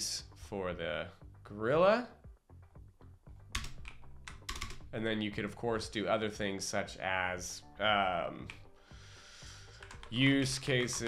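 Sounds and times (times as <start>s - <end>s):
computer keyboard keys clicking: 3.6s - 4.8s, 9.7s - 11.0s.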